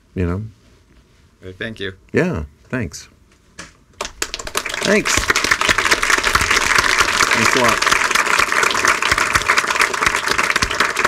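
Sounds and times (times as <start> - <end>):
audience applauding: 4.0 - 11.0.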